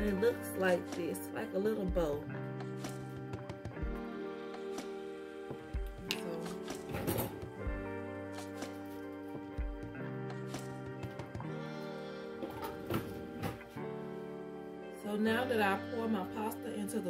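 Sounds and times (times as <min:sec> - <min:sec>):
background music with sustained chords: 0:00.0 - 0:17.0.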